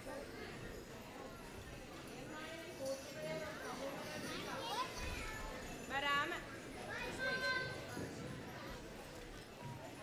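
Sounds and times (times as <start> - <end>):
children chattering: 0.0 - 5.8, 6.5 - 10.0
high child's voice: 6.9 - 7.8.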